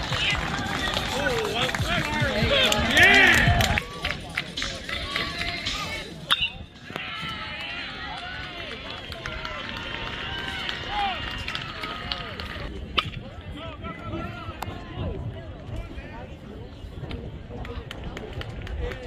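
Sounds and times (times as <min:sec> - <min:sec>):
crowd shouting and chatter: 0:00.0 - 0:19.0.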